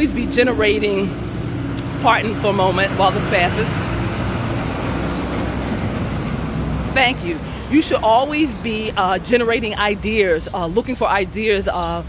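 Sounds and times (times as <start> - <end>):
people talking: 0.0 - 1.2, 1.8 - 3.8, 6.9 - 12.0
motor vehicle passing: 0.0 - 12.0.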